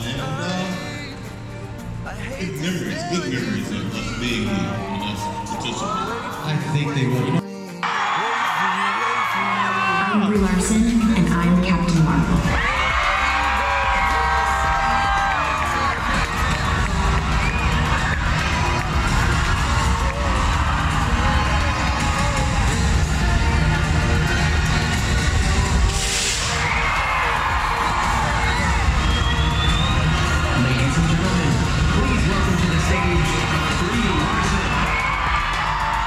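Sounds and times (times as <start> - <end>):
loud music over sound system: 0.0 - 36.0
crowd cheering and screaming: 4.3 - 10.5, 12.4 - 36.0.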